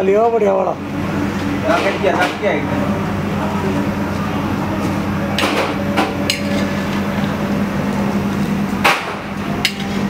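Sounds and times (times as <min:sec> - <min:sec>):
steady low hum: 0:00.0 - 0:10.0
metal skimmer clanking on iron pot: 0:09.6 - 0:10.0.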